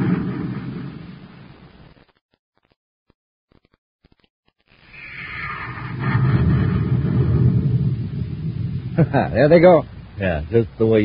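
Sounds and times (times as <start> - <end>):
rocket engines rumbling: 0.0 - 1.6, 4.9 - 11.0.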